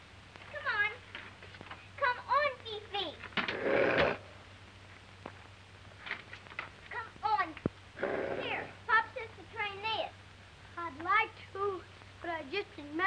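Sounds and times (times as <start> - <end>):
rough rasping bursts: 3.4 - 4.3, 8.0 - 8.8.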